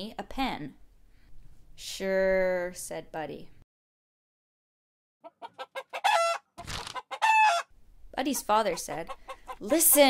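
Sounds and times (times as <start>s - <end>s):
hen clucking: 5.2s - 10.0s
hen squawking: 5.3s - 7.7s.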